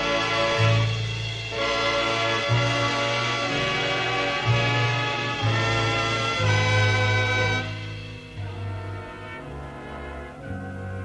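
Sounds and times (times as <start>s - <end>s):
bass line: 0.0s - 11.0s
brass sustained chords: 0.0s - 11.0s.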